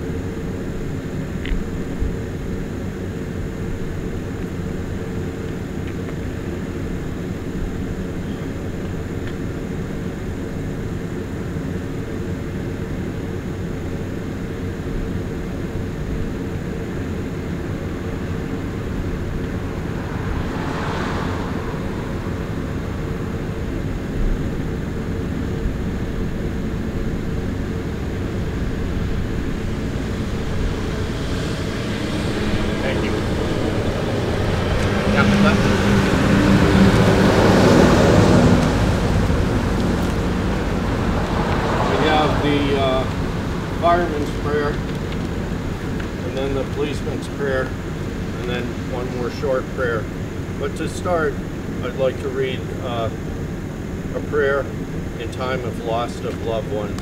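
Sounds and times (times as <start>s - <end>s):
fire engine motor idling: 38.5s - 57.0s.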